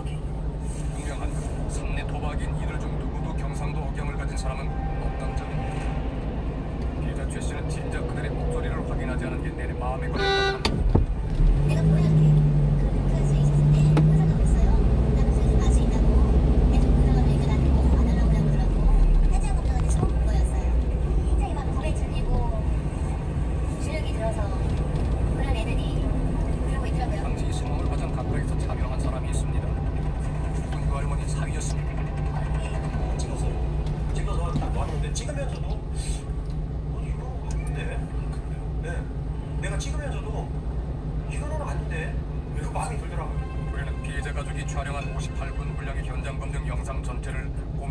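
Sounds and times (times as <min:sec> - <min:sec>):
truck engine and road rumble: 0:00.0 - 0:47.9.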